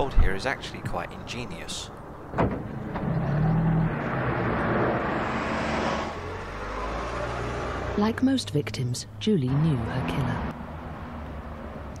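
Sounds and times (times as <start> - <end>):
road noise: 0.0 - 12.0
car engine: 1.8 - 12.0.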